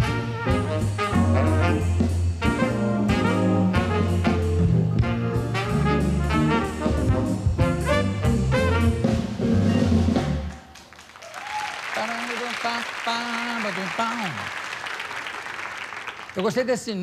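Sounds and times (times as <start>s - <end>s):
jazz band playing: 0.0s - 10.6s
audience applauding: 10.5s - 17.0s.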